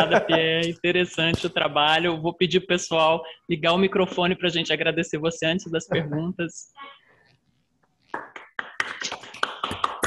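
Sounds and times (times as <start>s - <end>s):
people clapping: 8.1s - 10.0s.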